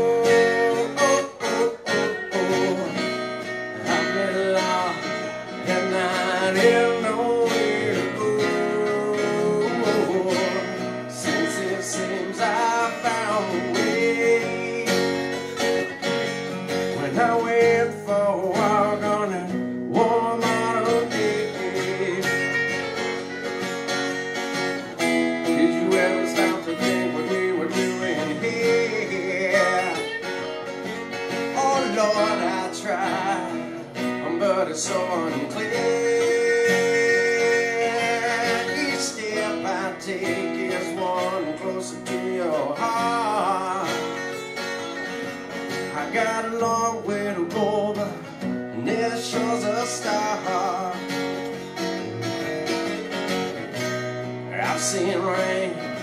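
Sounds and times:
lead guitar melody with bends: 0.0s - 56.0s
strummed acoustic guitar chords: 0.0s - 56.0s.

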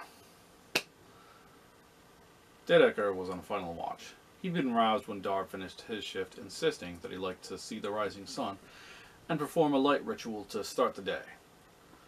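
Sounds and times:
finger snap: 0.7s - 1.0s.

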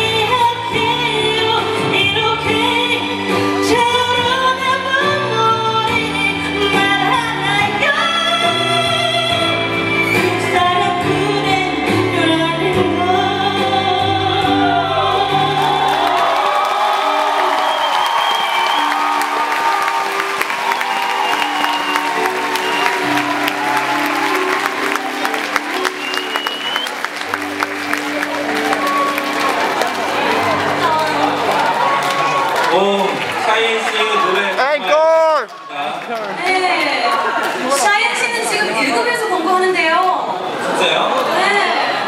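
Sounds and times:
woman singing: 0.0s - 16.1s
audience applauding: 14.7s - 39.3s.

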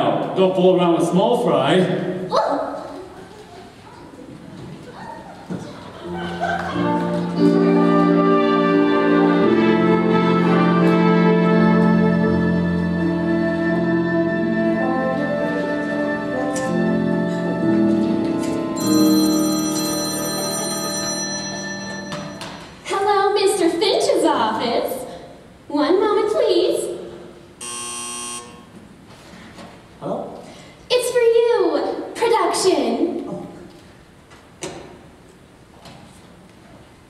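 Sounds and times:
orchestra playing held chords: 6.7s - 22.8s
high bell-like ring: 18.8s - 22.8s.

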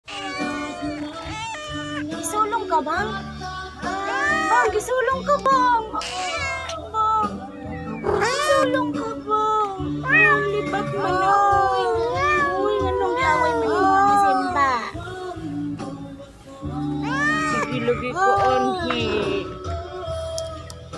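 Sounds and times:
cat hissing: 0.0s - 2.2s, 6.0s - 6.8s
cats yowling: 0.0s - 2.4s, 3.8s - 5.0s, 5.9s - 9.0s, 9.8s - 14.8s, 17.0s - 19.4s.

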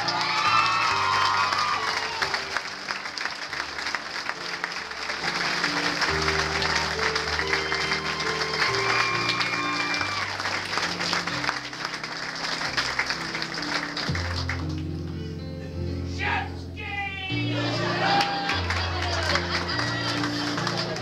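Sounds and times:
audience applauding: 0.0s - 15.0s, 17.6s - 21.0s
slow background music: 0.0s - 21.0s.

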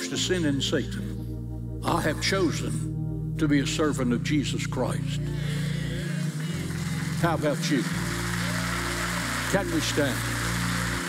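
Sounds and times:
sustained background music chords: 0.0s - 11.0s.

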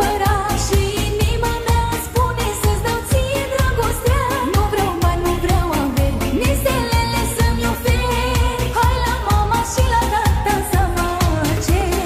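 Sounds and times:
steady dance beat: 0.0s - 12.0s.

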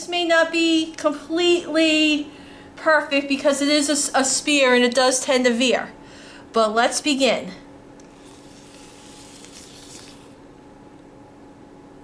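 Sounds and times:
robot ball rolling on paper: 8.1s - 10.4s.

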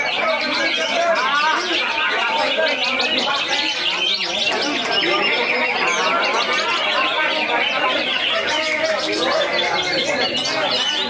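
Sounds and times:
birds singing chirps and whistles: 0.0s - 11.0s.

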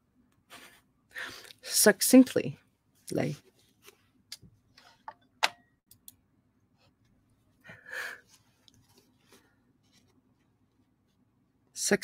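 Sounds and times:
faint irregular clicks: 4.3s - 6.2s.

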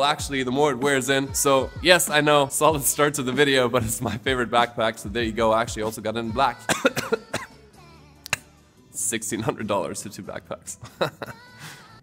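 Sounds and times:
quiet background music: 0.0s - 12.0s
man coughing: 6.6s - 7.6s.

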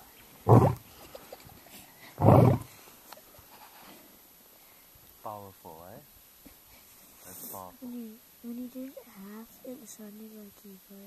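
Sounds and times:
lion roaring: 0.4s - 0.8s, 2.2s - 2.7s.

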